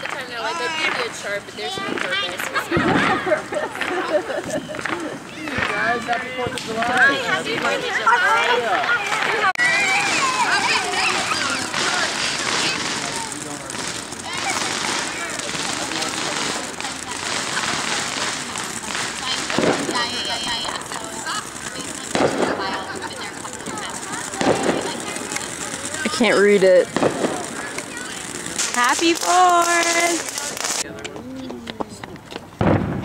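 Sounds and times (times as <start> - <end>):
firework bursts: 0.0 - 31.0, 32.5 - 33.0
fireworks fountain hissing: 0.0 - 33.0.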